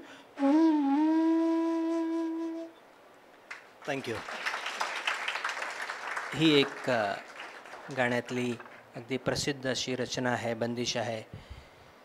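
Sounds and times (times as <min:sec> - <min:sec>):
bamboo flute long note: 0:00.0 - 0:02.8.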